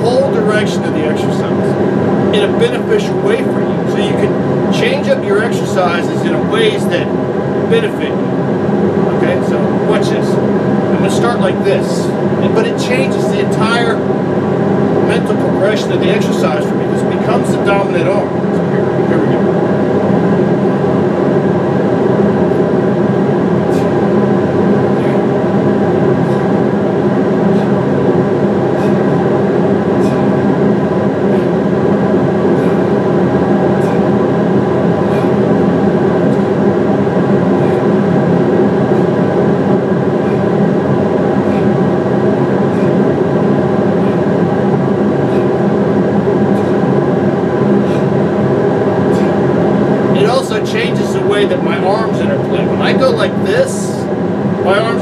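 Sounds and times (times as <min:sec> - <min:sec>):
industrial fans droning: 0:00.0 - 0:55.0.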